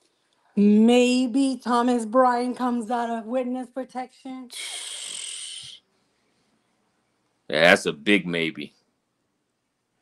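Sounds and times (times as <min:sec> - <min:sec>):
person breathy exhale: 0:04.5 - 0:05.8.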